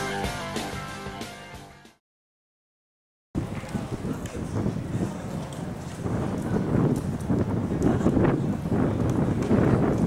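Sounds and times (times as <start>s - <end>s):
wind buffeting microphone: 3.4s - 10.0s.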